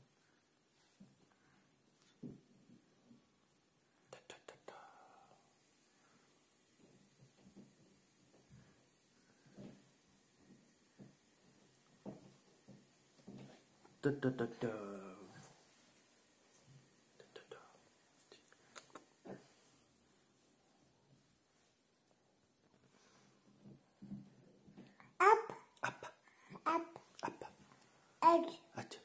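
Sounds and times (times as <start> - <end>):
mouth pops: 18.6 - 19.1.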